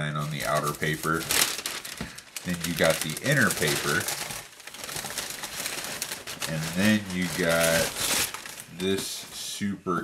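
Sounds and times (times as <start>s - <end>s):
tissue paper rustling and crinkling: 0.2s - 9.5s.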